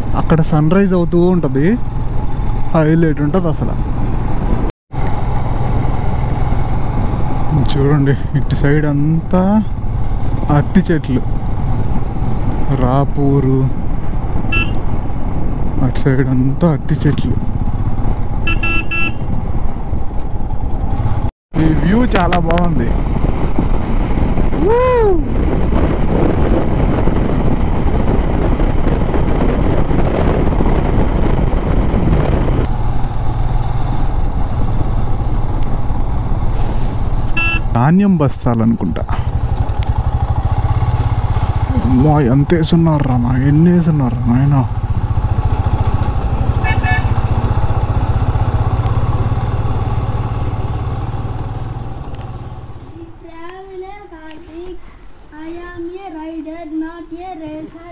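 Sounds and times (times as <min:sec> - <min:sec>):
motorcycle engine running: 0:00.0 - 0:53.2
wind and road noise: 0:00.0 - 0:57.9
horn beep: 0:14.5 - 0:14.8, 0:18.4 - 0:19.3, 0:37.3 - 0:37.7, 0:46.5 - 0:47.3.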